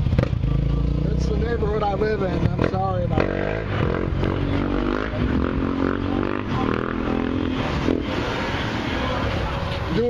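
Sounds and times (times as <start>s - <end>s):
traffic rumble: 0.0s - 10.0s
vehicle engine revving: 0.0s - 10.0s.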